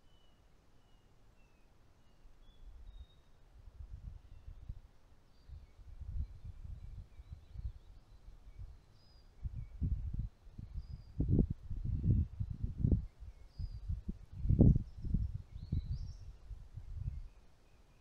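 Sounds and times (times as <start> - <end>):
faint bird chirps: 0.0 - 18.0
wind buffeting microphone: 3.6 - 4.8, 5.5 - 8.8, 9.4 - 17.4.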